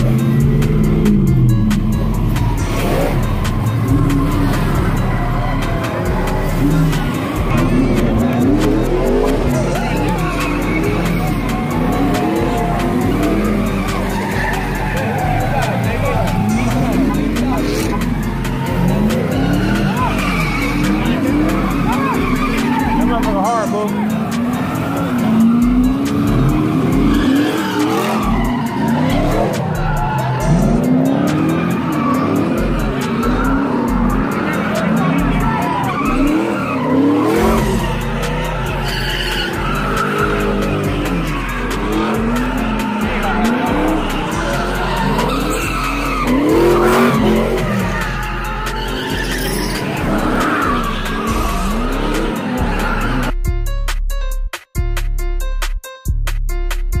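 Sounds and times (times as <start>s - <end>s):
car engines revving: 0.0s - 53.4s
crowd voices: 0.0s - 53.4s
tires squealing: 0.0s - 53.5s.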